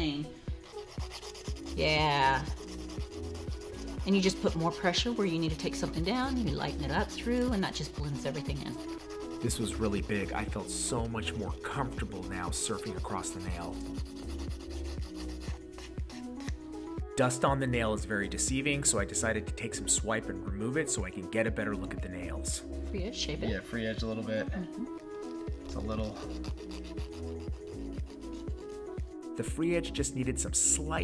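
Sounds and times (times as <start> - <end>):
soft background music with beat: 0.0 - 31.0
nail file rasping: 0.6 - 16.7, 24.8 - 29.2.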